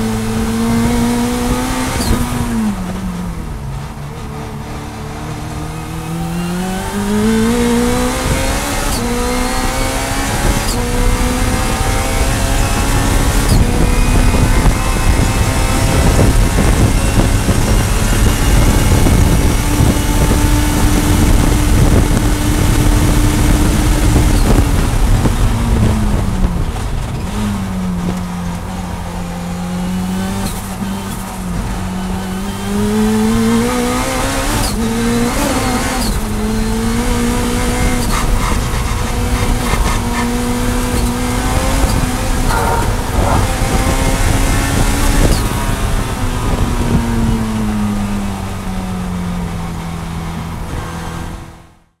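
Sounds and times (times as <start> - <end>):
race car engine revving: 0.0 - 29.0, 29.7 - 47.7.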